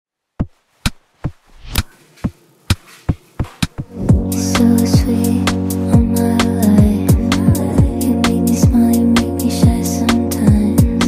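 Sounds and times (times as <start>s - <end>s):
song: 3.9s - 11.0s.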